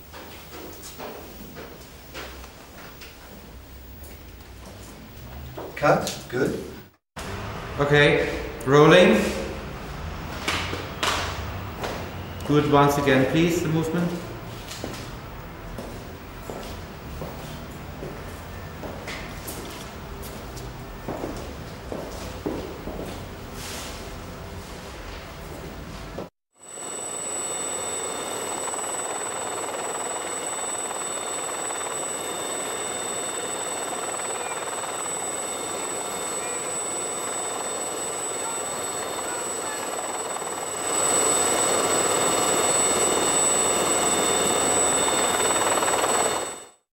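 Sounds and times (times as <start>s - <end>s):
helicopter engine and rotor noise: 26.6s - 46.8s.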